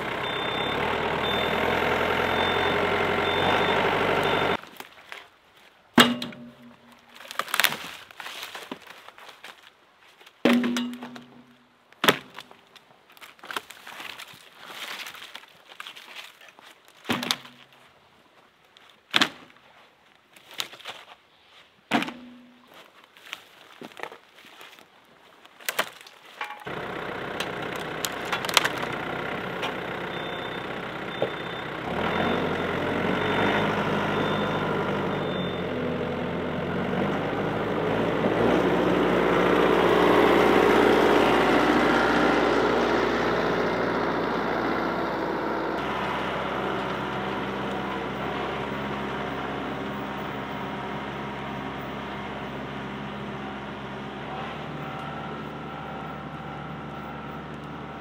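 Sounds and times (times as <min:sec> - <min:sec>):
tractor engine running: 0:00.0 - 0:04.7, 0:26.4 - 0:58.0
rotary cutter through brush: 0:25.5 - 0:29.9.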